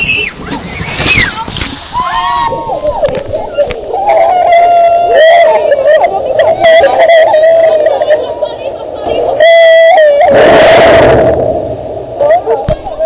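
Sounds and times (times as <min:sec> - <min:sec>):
people yelling and whooping: 0:00.0 - 0:11.3, 0:12.1 - 0:13.0
rushing noise: 0:09.4 - 0:12.6.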